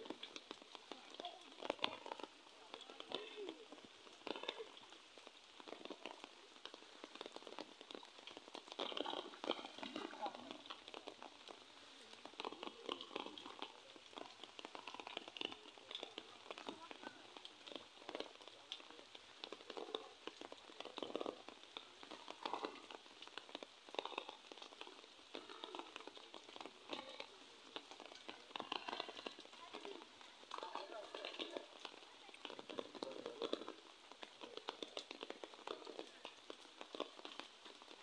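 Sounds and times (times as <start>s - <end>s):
water dripping and splashing: 0.0s - 38.0s.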